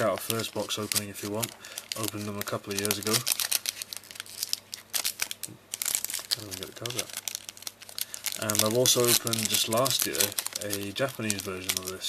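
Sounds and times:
foil wrapper crinkling: 0.0 - 12.0.

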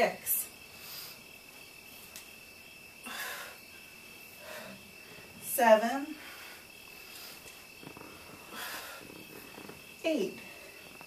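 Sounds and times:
woman breathing with exertion: 0.6 - 1.4, 3.0 - 5.5, 6.1 - 11.0.

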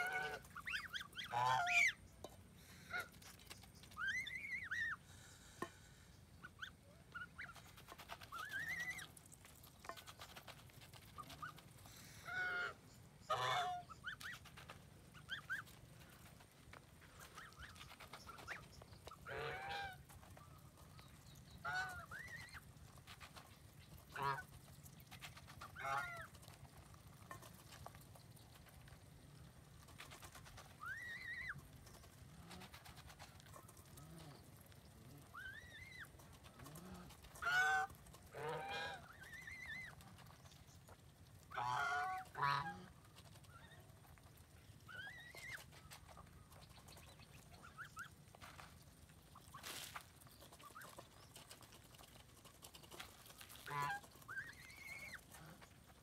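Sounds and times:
geese honking: 0.0 - 2.0, 11.2 - 14.2, 19.1 - 20.1, 24.1 - 24.5, 41.5 - 43.0, 53.5 - 55.6.

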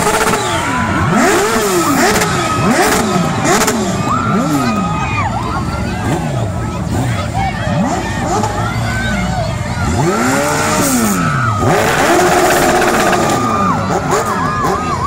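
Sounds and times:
crowd chatter and shouting: 0.0 - 15.0
motorcycle engines revving: 0.0 - 15.0.

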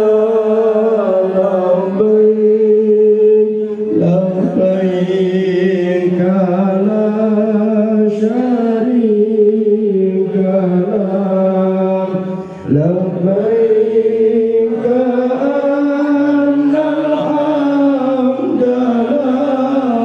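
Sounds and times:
devotional chanting: 0.0 - 20.0.

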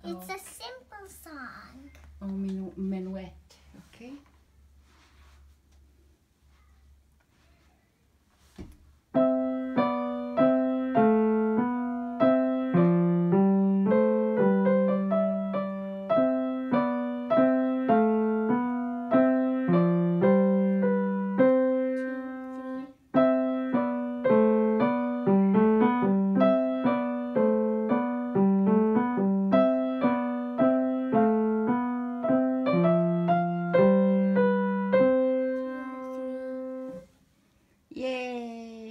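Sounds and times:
grand piano playing a minuet: 9.2 - 37.0.

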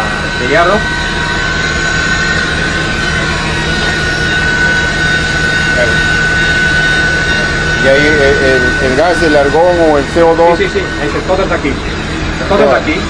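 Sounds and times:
heavy machinery humming and whining: 0.0 - 13.0.

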